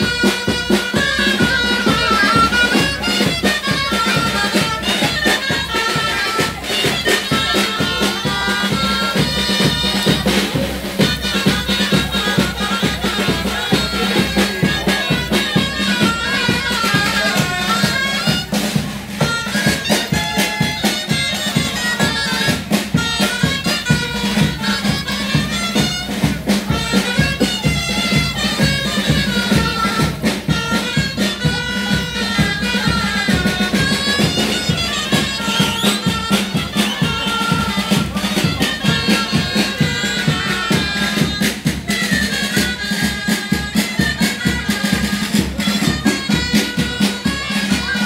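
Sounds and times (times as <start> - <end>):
bagpipe melody with drone: 0.0 - 48.0
drum beat: 0.0 - 48.0.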